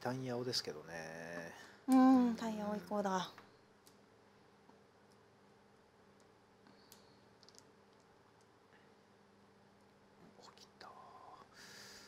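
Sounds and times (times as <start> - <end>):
plastic tiles clicking: 6.9 - 8.1
quiet low speech: 10.2 - 11.6.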